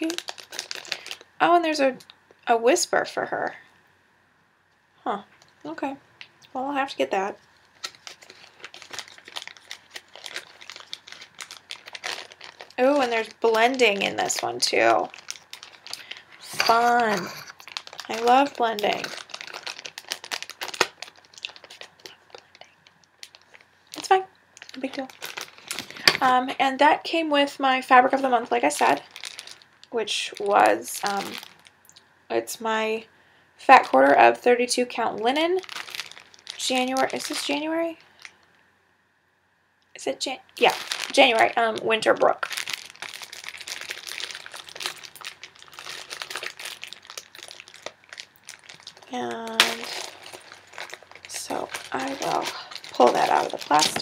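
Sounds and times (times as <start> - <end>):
packaging crinkling: 0.0 - 1.4, 7.2 - 26.4, 28.2 - 31.8, 35.4 - 38.5, 40.6 - 54.0.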